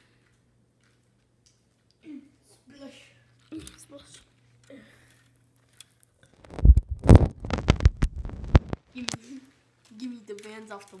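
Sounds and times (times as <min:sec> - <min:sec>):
phone microphone handling noise: 0:06.4 - 0:08.8.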